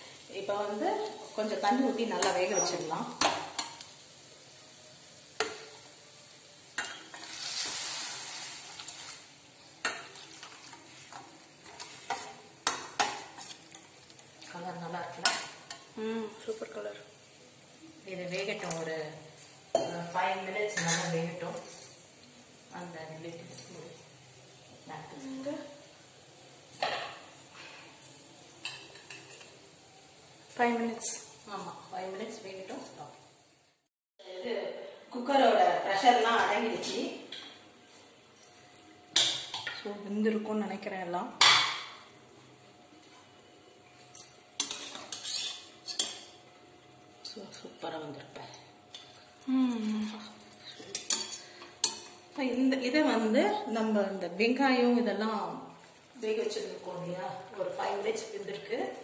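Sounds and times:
metal skimmer scraping a pot: 44.7 - 46.2.

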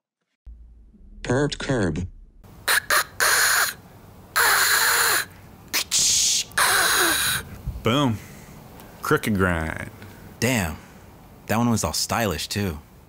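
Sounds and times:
man imitating skateboard with mouth: 2.7 - 3.8, 4.4 - 7.5.

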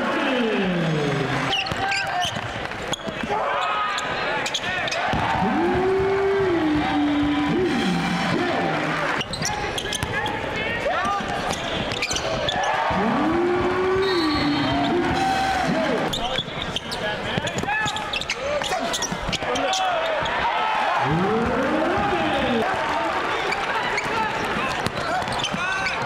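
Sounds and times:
sneakers squeaking: 1.4 - 5.3, 9.1 - 13.0, 13.6 - 15.0, 16.0 - 20.4, 23.4 - 26.0.

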